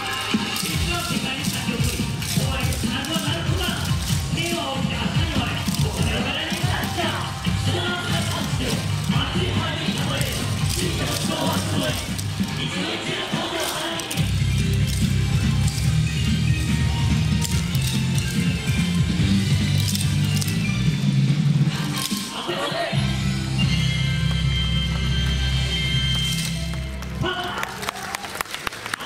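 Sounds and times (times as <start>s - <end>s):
wooden clappers clacking: 0.0s - 22.7s
dance music over speakers: 0.0s - 26.2s.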